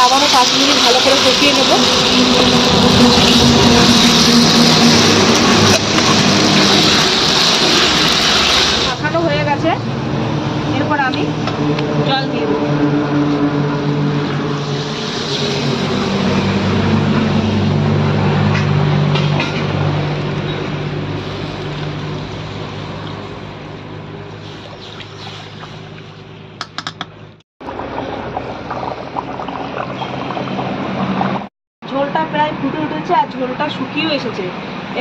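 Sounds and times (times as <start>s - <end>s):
water hissing in hot oil: 0.0s - 9.2s, 14.4s - 17.8s, 20.7s - 26.3s, 27.7s - 31.5s
gravy bubbling and crackling: 27.6s - 31.5s.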